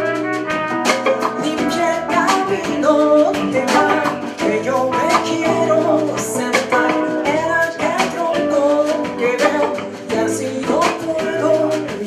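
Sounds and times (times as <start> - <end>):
bass guitar: 0.0 - 12.0
drums: 0.0 - 12.0
electric guitar: 0.0 - 12.0
woman singing: 1.2 - 12.0.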